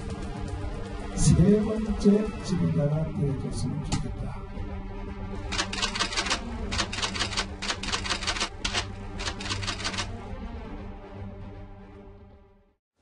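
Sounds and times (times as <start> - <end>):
low background music: 0.0 - 13.0
typewriter clicking: 5.5 - 10.1.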